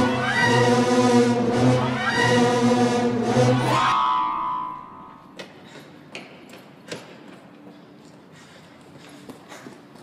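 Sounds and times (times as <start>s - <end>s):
film score music: 0.0s - 5.4s.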